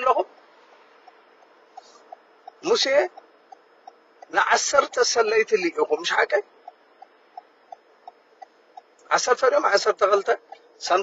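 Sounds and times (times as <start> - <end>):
faint cabin road noise: 0.0 - 11.0
car turn signal clicking: 0.3 - 4.4, 6.6 - 9.0.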